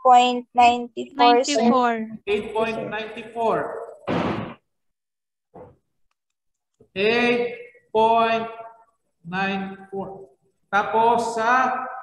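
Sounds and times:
soft voice sound: 1.0 - 2.0.

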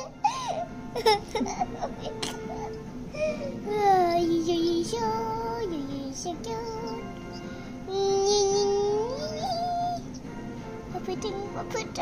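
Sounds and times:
child singing wordless notes: 3.6 - 10.2, 10.9 - 12.0.

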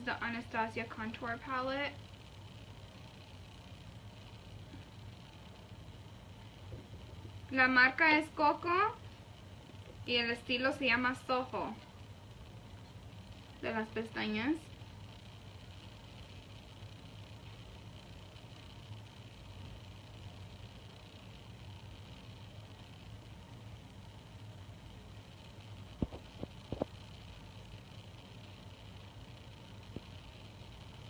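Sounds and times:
room hum with hiss: 0.0 - 31.0.

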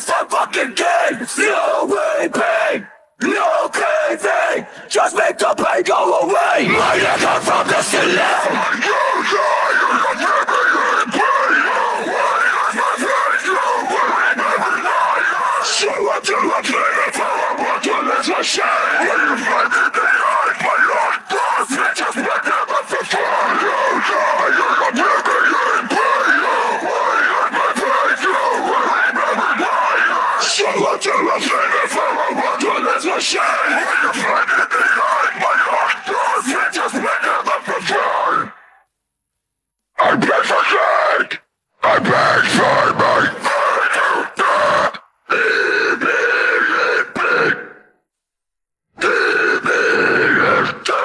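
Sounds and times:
person screaming vocals: 5.4 - 38.6, 41.9 - 47.8, 49.0 - 51.0.

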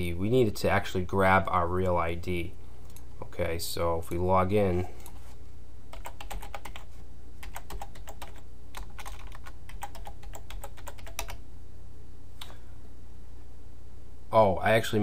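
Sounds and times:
typing on computer keyboard: 5.9 - 11.4.

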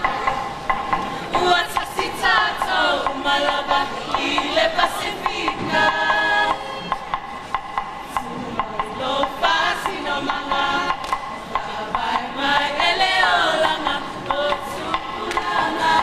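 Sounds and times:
group singing: 0.0 - 7.2, 8.0 - 16.0
sharp hand claps: 10.9 - 11.4, 15.2 - 15.6.

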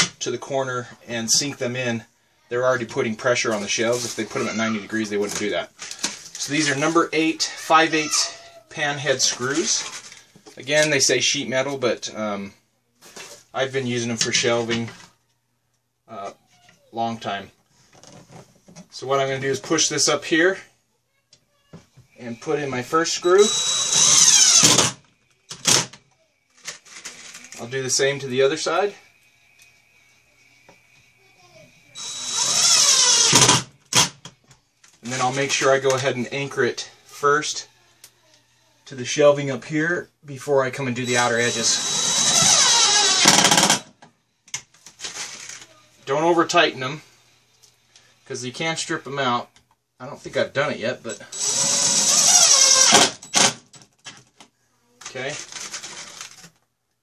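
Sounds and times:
cordless drill motor whine: 23.3 - 25.0, 32.0 - 33.6, 41.0 - 43.8, 51.3 - 53.5.

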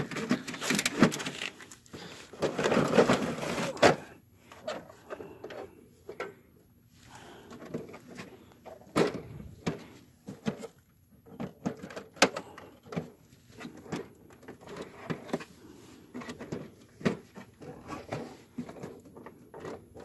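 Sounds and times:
printer plastic clicks and rattles: 0.0 - 1.6, 11.3 - 13.1.

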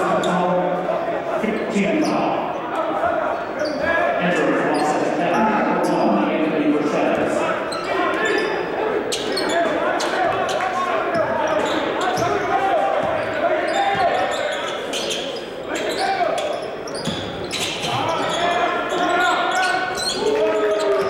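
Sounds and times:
babble of voices in hall: 0.0 - 21.0.

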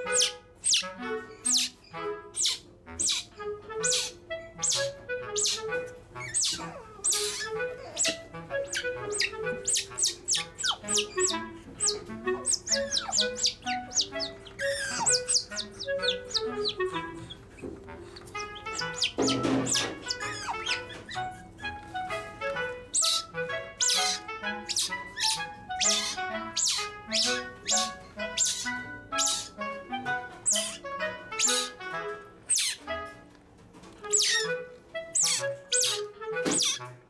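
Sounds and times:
otter pups squealing: 0.0 - 22.0, 22.9 - 29.6, 30.4 - 31.8, 32.5 - 32.9, 34.0 - 36.9
otter pups chirping: 0.0 - 29.7, 30.4 - 31.8, 32.5 - 32.9, 34.0 - 36.9
light background music: 0.0 - 37.0.

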